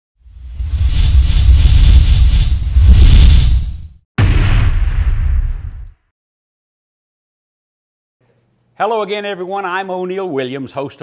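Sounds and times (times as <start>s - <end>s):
deep rumbling whoosh: 0.3s - 5.9s.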